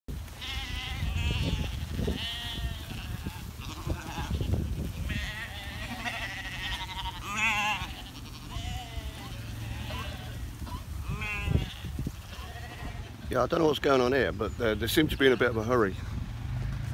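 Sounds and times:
constant low rumble: 0:00.1 - 0:16.9
sheep bleating: 0:00.4 - 0:13.2.

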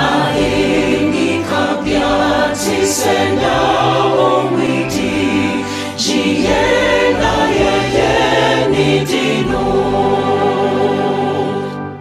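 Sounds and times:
male choir singing a hymn: 0:00.0 - 0:12.0.

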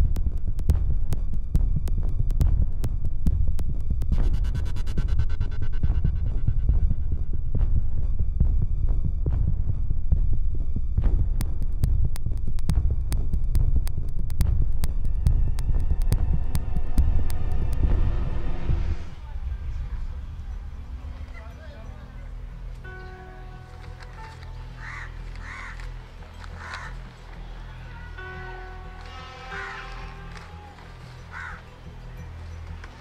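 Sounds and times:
ticking percussion: 0:00.0 - 0:07.0, 0:10.9 - 0:27.6
deep throbbing bass drone: 0:00.0 - 0:33.0
sustained tone: 0:14.7 - 0:33.0.

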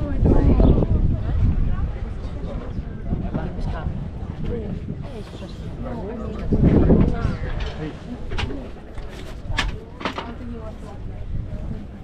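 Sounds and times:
murmur of people talking: 0:00.0 - 0:12.0.

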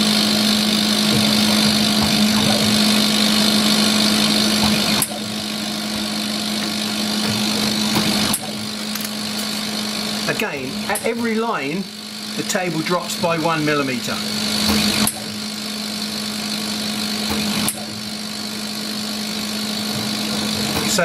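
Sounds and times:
laser cutter humming and hissing: 0:00.0 - 0:21.0.

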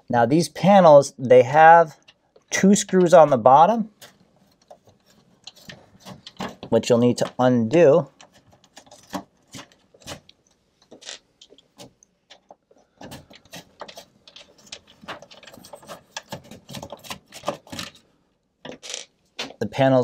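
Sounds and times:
screws clicking and scraping: 0:04.0 - 0:06.7, 0:08.1 - 0:18.0.

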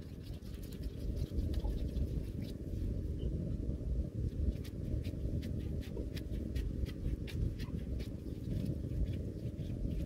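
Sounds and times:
hands rubbing and patting dough: 0:00.0 - 0:03.1, 0:04.3 - 0:10.0.

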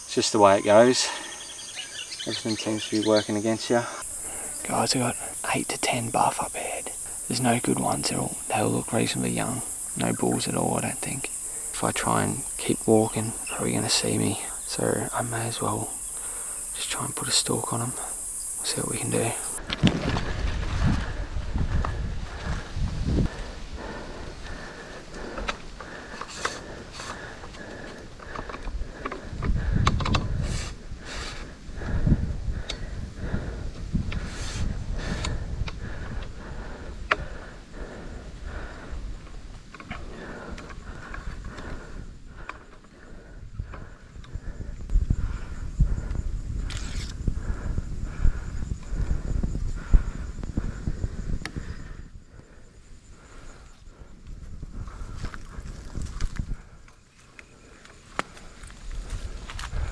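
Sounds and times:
faint insect drone: 0:00.0 - 0:59.9.

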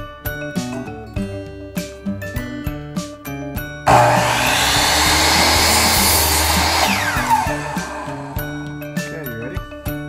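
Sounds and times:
miter saw cutting wood: 0:03.9 - 0:08.8
motor winding down whine: 0:03.9 - 0:08.8.

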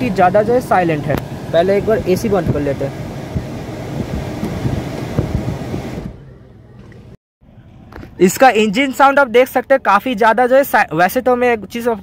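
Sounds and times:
car air conditioning blower: 0:00.0 - 0:06.3.

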